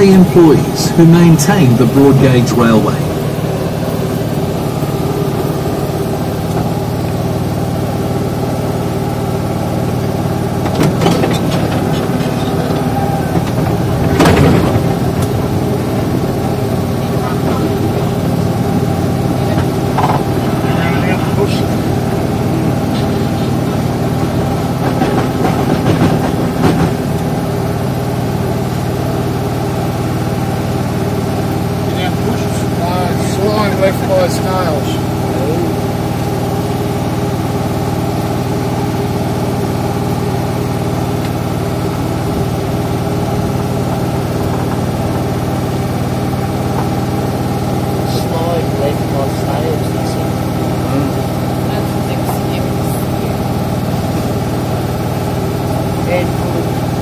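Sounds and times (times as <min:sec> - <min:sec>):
train engine idling: 0:00.0 - 0:57.0
knocks and clanks: 0:10.6 - 0:18.2, 0:19.4 - 0:20.7, 0:22.7 - 0:27.4.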